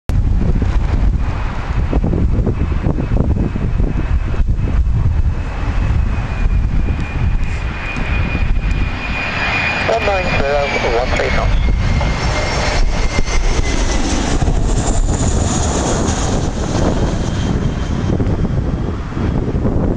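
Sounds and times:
jet airliner engines whining: 0.1s - 19.9s.

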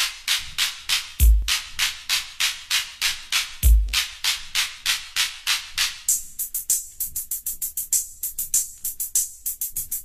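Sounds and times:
hissy shaker-like percussion beat: 0.0s - 10.0s.

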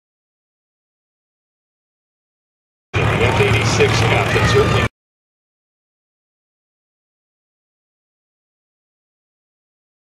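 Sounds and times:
propeller plane engine running: 3.0s - 4.9s.

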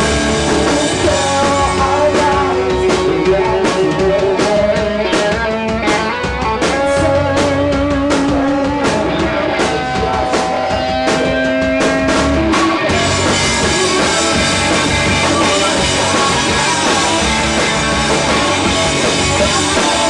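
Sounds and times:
drum kit hits: 0.0s - 20.0s
sustained guitar notes: 4.9s - 20.0s.

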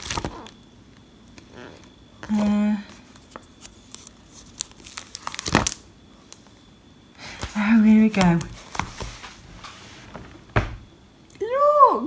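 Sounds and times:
book pages turning: 0.0s - 0.6s, 2.2s - 6.4s, 7.3s - 9.9s
crisp page flicks: 3.1s - 5.8s.

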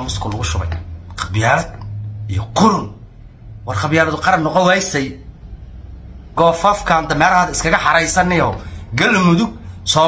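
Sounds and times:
man's voice: 0.0s - 3.0s, 3.6s - 5.2s, 6.4s - 10.0s
steady low hum: 0.0s - 10.0s.

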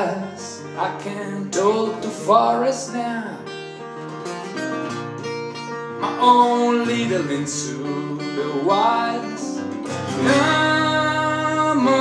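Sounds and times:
guitar strumming chords: 0.0s - 12.0s.

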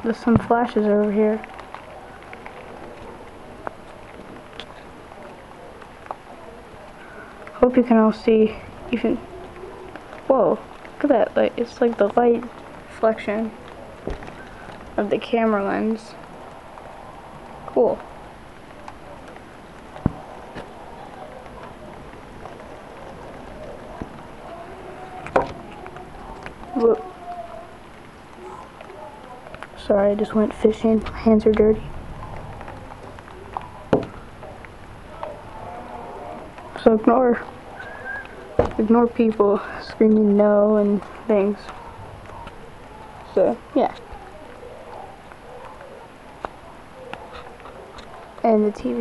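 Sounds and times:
heavy rain rushing: 0.0s - 49.0s.

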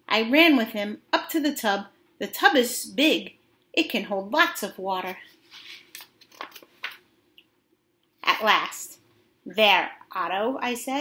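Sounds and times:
book pages turning: 5.3s - 7.1s.

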